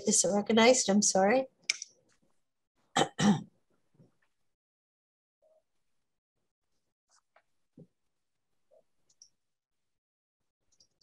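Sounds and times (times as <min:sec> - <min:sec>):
woman clearing her throat: 0:03.0 - 0:03.5.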